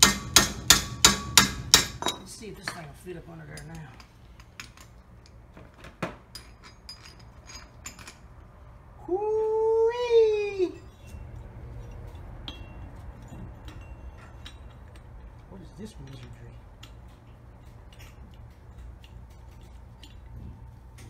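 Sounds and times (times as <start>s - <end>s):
metal tool parts clinking: 6.2s - 8.4s, 10.8s - 20.3s.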